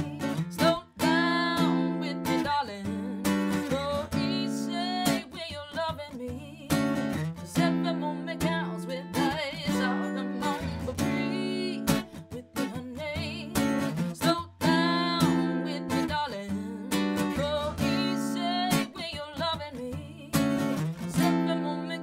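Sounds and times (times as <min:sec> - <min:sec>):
strummed acoustic guitar: 0:00.0 - 0:22.0
woman singing: 0:00.0 - 0:22.0.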